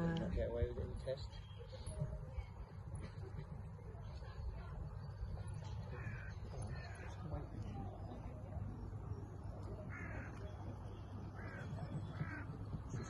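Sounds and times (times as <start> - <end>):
bird calls: 4.9 - 13.0.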